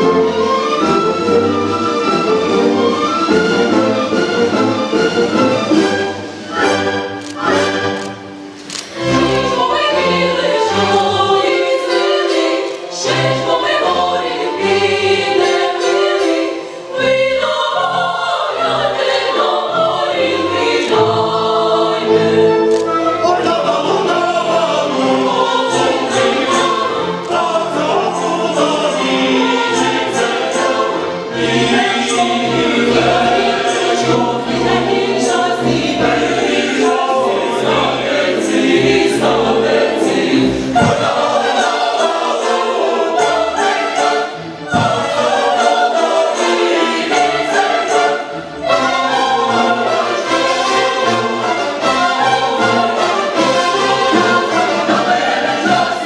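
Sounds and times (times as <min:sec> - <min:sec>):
mixed choir singing in harmony: 0:00.0 - 0:56.0.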